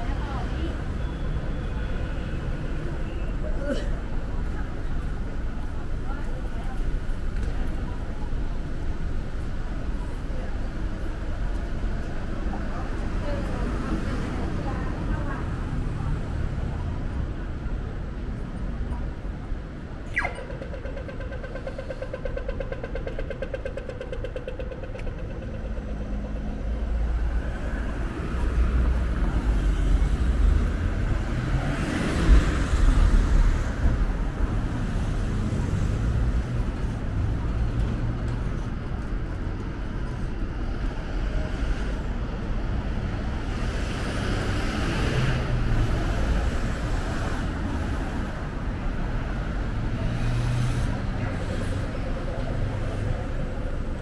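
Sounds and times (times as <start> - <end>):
city traffic: 0.0 - 54.0
crossing signal electronic zap: 20.1 - 20.8
crossing signal rapid ticking: 20.2 - 27.6.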